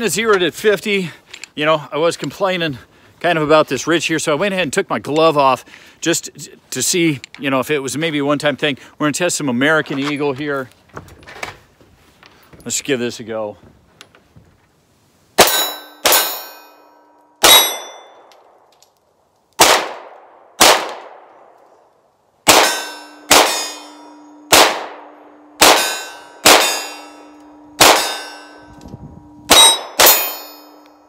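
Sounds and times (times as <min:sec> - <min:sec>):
pistol shots: 0:15.4 - 0:16.4, 0:17.4 - 0:18.6, 0:19.6 - 0:21.5, 0:22.4 - 0:23.9, 0:24.5 - 0:27.2, 0:27.8 - 0:28.5, 0:29.5 - 0:30.5
steel target ringing: 0:15.4 - 0:18.3, 0:22.5 - 0:31.0.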